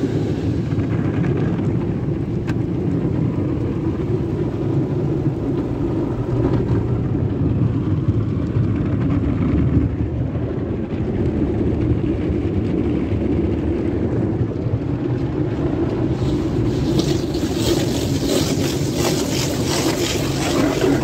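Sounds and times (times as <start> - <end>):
car wash spraying water: 0.0 - 8.8, 15.2 - 21.0.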